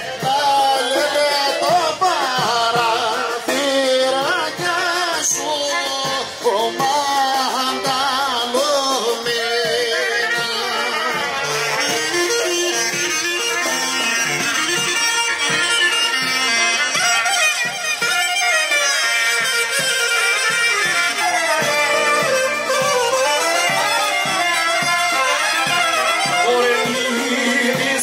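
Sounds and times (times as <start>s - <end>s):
reedy wind instrument melody: 0.0s - 28.0s
steady drum beat: 0.0s - 28.0s.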